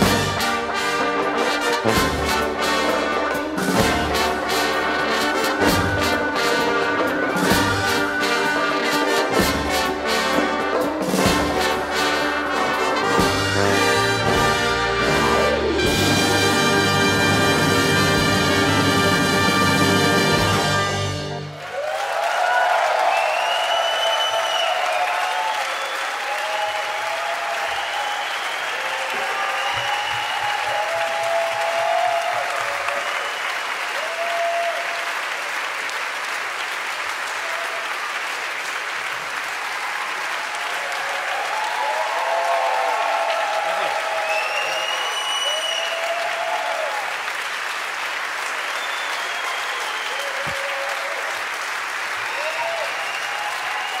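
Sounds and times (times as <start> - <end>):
audience applauding: 0.0 - 54.0
crowd cheering: 10.8 - 54.0
whistles: 23.1 - 27.0, 27.6 - 30.8, 33.0 - 33.7, 44.2 - 46.2, 48.7 - 50.6, 52.3 - 54.0.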